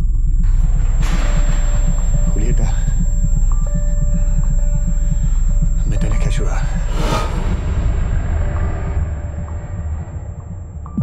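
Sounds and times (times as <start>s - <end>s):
low rumbling drone: 0.0s - 11.0s
short rushing hit: 6.8s - 11.0s.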